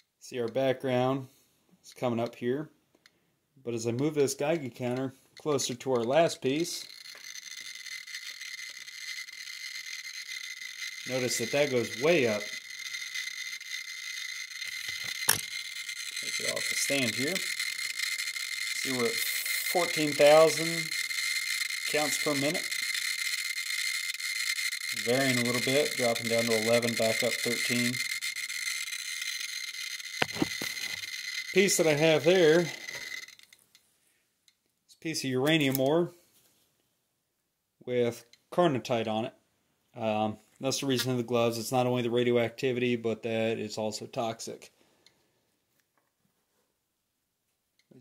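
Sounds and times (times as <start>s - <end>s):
geiger counter clicking rapidly: 4.0s - 33.7s.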